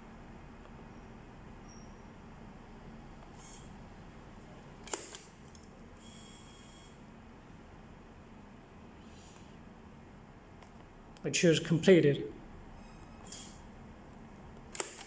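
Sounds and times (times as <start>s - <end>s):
room hum: 0.0s - 15.0s
tape cutter clicks: 4.8s - 5.7s, 14.7s - 15.0s.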